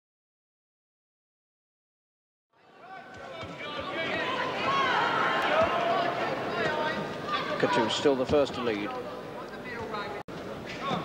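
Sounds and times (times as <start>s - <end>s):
crowd shouting: 2.6s - 8.2s.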